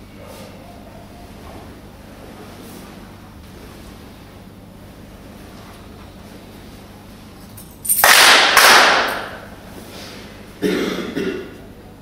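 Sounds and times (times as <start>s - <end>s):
handclaps ringing in hall: 7.8s - 9.5s.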